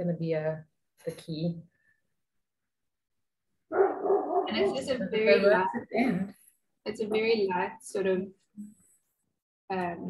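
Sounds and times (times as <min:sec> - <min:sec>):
dog barking: 0:03.7 - 0:04.9.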